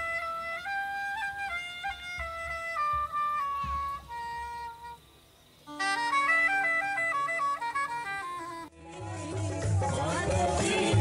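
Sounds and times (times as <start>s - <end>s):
reed wind instrument melody: 0.0s - 9.3s.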